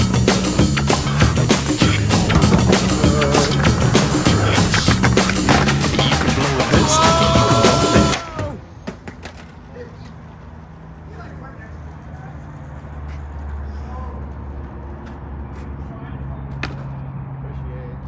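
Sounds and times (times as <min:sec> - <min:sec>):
vehicle engine rumbling: 0:00.0 - 0:06.7, 0:08.6 - 0:18.0
faint voices: 0:06.0 - 0:08.6.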